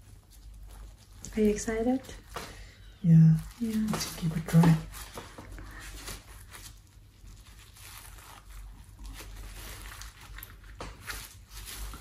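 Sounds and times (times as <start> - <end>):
food rustling on kitchen counter: 0.0 - 12.0
low steady hum: 0.0 - 12.0.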